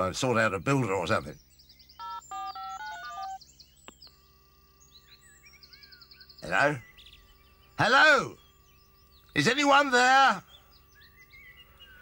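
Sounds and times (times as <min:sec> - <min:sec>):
faint steady phone tone: 0:02.0 - 0:03.4, 0:04.1 - 0:05.4
phone keypad beeps: 0:02.0 - 0:03.4.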